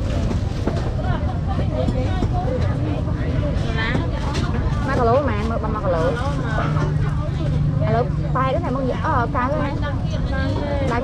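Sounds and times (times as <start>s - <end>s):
people talking: 0.1s - 11.0s.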